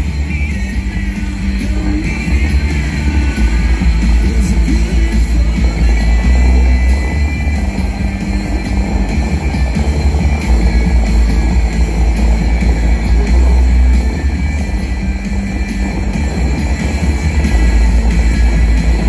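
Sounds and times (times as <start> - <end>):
heavy low rumble: 0.0 - 19.0
music over loudspeakers: 0.0 - 19.0.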